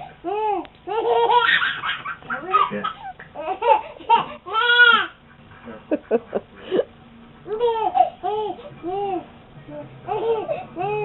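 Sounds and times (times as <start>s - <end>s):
baby laughing: 0.2s - 5.2s, 7.5s - 9.2s, 10.1s - 11.0s.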